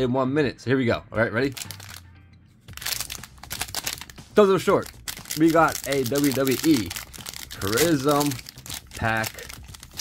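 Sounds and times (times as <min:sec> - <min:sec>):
background music: 0:00.0 - 0:10.0
foil pack crinkling: 0:01.5 - 0:02.0, 0:02.7 - 0:10.0.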